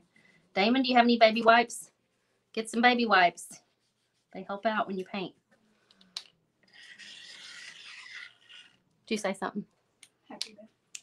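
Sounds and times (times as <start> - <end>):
hand rubbing a surface: 3.6 - 4.4.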